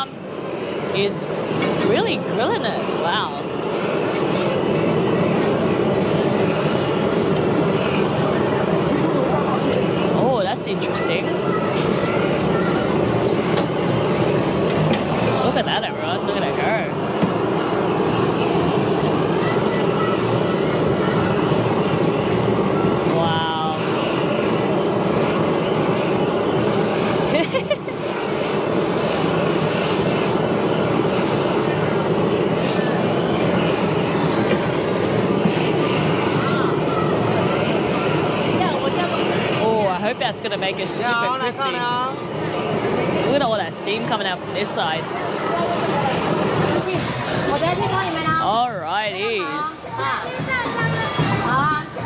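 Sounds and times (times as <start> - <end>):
crowd chatter: 0.0 - 52.0
gas blowtorch running: 0.0 - 52.0
music: 49.7 - 52.0.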